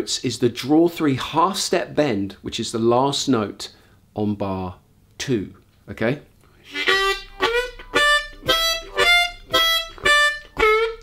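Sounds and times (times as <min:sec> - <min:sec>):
harmonica blues riff: 0:06.6 - 0:11.0.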